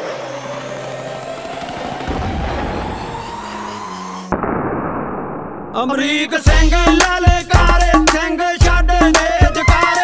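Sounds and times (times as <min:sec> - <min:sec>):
rising whine: 0:00.0 - 0:05.8.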